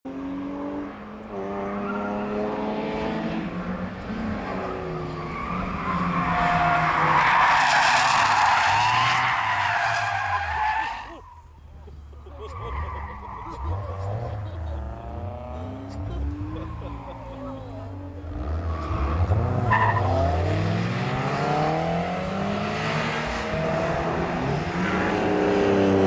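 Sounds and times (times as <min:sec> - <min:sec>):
car engines revving: 0:00.1 - 0:26.0.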